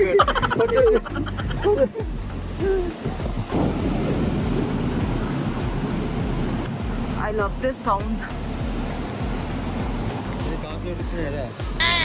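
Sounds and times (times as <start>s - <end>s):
stream rushing over rocks: 2.3s - 7.3s.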